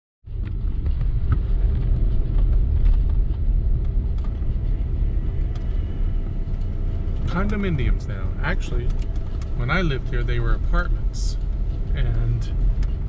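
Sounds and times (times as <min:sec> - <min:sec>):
car engine rumbling inside cabin: 0:00.3 - 0:13.0.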